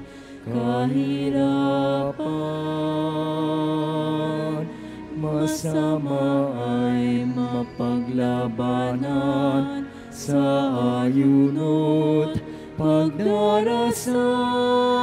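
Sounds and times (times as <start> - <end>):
singers breathing: 0.0 - 0.5, 4.7 - 5.2, 9.8 - 10.2, 12.4 - 12.8
hymn singing in a church: 0.0 - 15.0.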